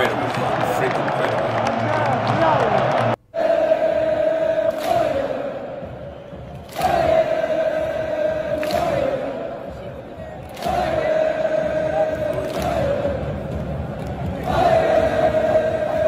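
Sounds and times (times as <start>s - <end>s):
stadium crowd chanting: 0.0s - 16.0s.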